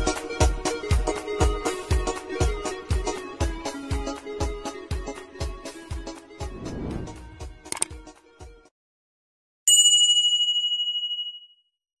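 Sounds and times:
bell-like ding: 0:09.7 - 0:11.7.

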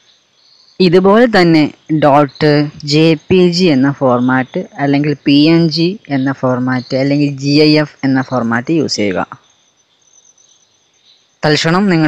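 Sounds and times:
background hiss: 0:00.0 - 0:12.0
person speaking: 0:00.8 - 0:09.4, 0:11.4 - 0:12.0.

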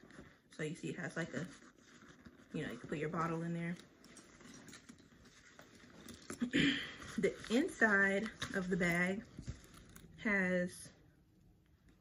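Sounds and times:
bag rustling and clicking: 0:01.3 - 0:10.2.

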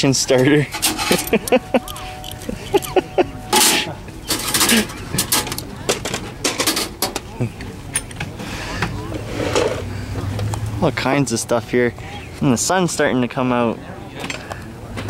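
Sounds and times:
people talking: 0:00.0 - 0:15.0.

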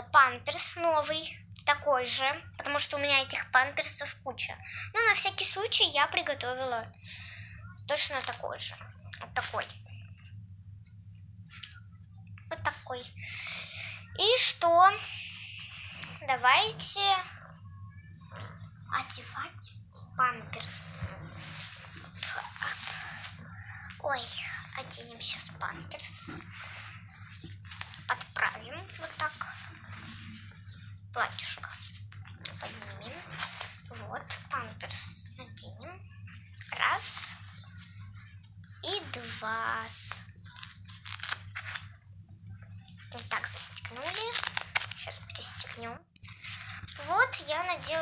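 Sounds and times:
girl's high-pitched voice: 0:00.0 - 0:06.9, 0:07.7 - 0:09.8, 0:12.5 - 0:18.1, 0:18.9 - 0:21.1, 0:24.0 - 0:26.4, 0:27.5 - 0:29.7, 0:31.2 - 0:31.8, 0:32.5 - 0:36.0, 0:36.7 - 0:37.4, 0:38.8 - 0:40.3, 0:43.1 - 0:46.0, 0:47.0 - 0:48.0
diaper rustling: 0:20.5 - 0:34.5, 0:36.5 - 0:42.0, 0:43.0 - 0:48.0.

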